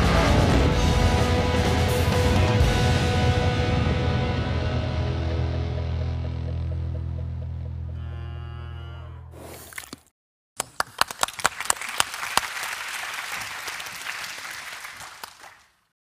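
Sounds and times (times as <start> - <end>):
audience applause: 10.6 - 15.9.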